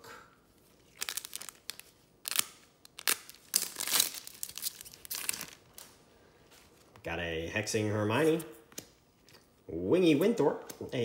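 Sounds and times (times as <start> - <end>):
wrapper crinkling and tearing: 0.8 - 6.0.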